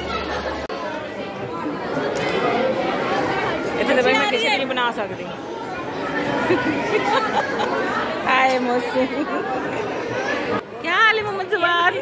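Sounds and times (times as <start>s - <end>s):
crowd chatter in large hall: 0.0s - 12.0s.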